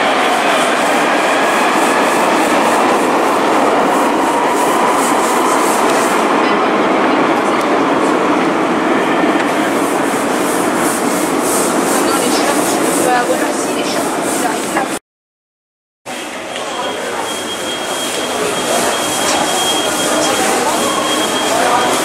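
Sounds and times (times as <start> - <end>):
tram running: 0.0 - 15.0, 16.1 - 22.0.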